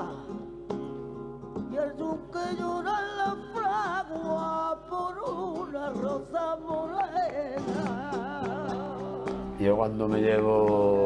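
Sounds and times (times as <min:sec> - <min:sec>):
person singing with vibrato: 0:00.0 - 0:00.6, 0:01.6 - 0:11.0
guitar accompaniment: 0:00.0 - 0:11.0
sharp hand claps: 0:06.7 - 0:11.0.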